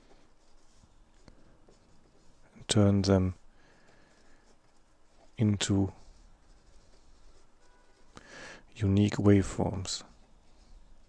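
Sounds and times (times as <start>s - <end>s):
pen scratching on paper: 0.0s - 8.2s, 8.8s - 11.0s.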